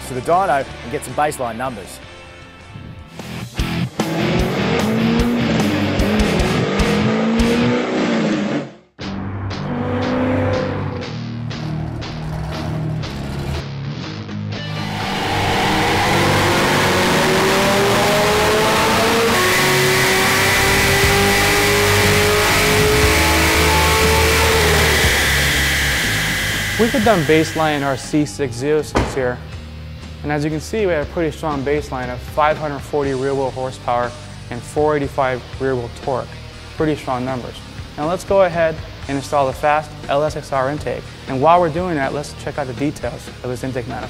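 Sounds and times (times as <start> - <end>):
background music: 0.0 - 44.0
car engine revving at full throttle: 3.9 - 8.8, 9.6 - 13.5, 14.8 - 28.0.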